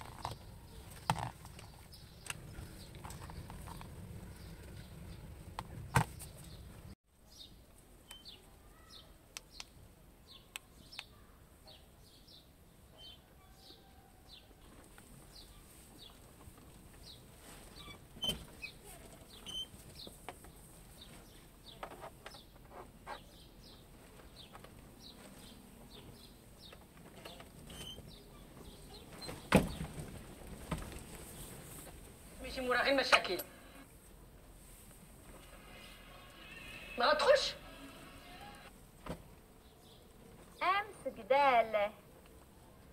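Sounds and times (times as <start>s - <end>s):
small birds chirping: 0.0s - 14.6s, 15.2s - 16.3s, 16.9s - 34.4s, 39.4s - 41.8s.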